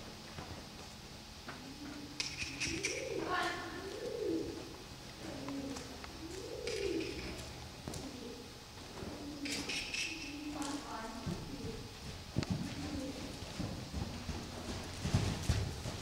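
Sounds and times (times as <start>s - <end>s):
pigeons cooing: 1.5s - 16.0s.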